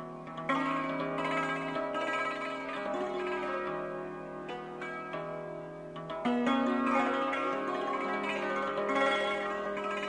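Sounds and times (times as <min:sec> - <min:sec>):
hammered dulcimer playing: 0:00.0 - 0:10.0.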